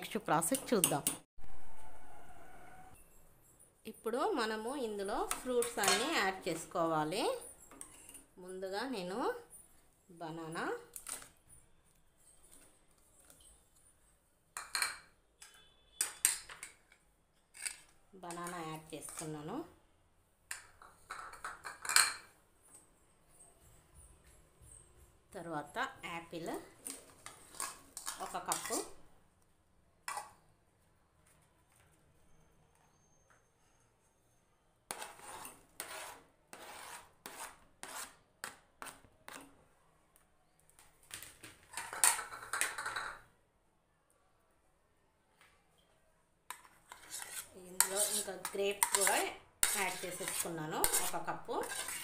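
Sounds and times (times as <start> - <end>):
knife and spoon clinking on pot: 4.4 - 8.3, 26.8 - 29.0, 46.5 - 52.0.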